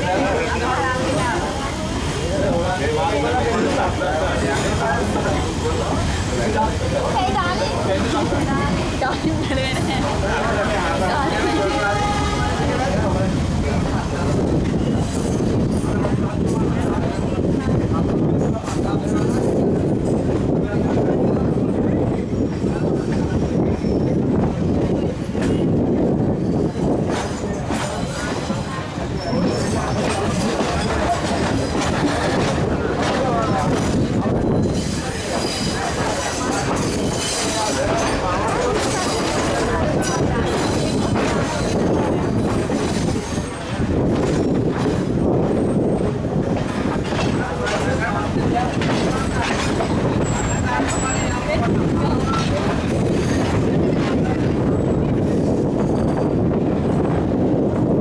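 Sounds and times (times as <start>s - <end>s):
train engine and wheels rumbling: 0.0s - 58.0s.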